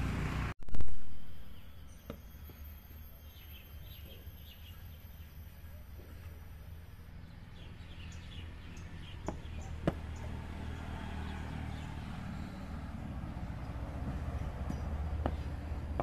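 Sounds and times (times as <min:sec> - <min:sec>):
birds chirping: 0:01.2 - 0:16.0.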